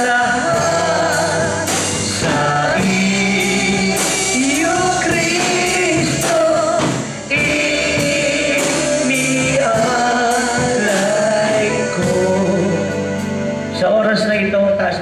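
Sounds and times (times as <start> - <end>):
gospel worship song: 0.0 - 15.0.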